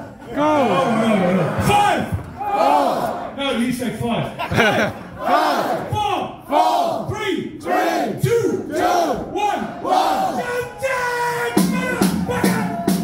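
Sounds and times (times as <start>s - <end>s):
crowd chanting in rhythm: 2.2s - 3.4s, 4.9s - 10.6s.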